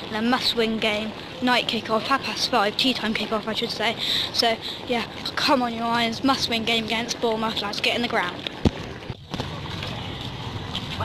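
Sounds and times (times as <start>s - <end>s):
crowd of people walking: 0.0s - 11.0s
wind rumbling on microphone: 8.1s - 11.0s.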